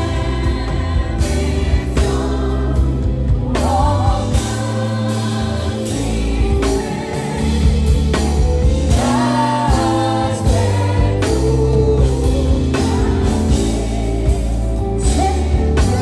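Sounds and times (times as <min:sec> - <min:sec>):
gospel band playing: 0:00.0 - 0:16.0
steady bass line: 0:00.0 - 0:16.0
sung vocals: 0:00.0 - 0:16.0.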